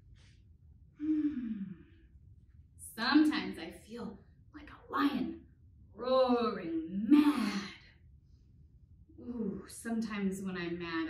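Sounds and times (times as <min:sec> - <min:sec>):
woman sighing: 0:01.0 - 0:02.0.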